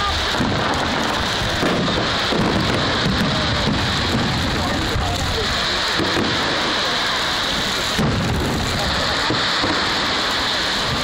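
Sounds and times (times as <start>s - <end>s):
firework shells booming: 0.0s - 11.0s
loud hiss: 0.0s - 11.0s.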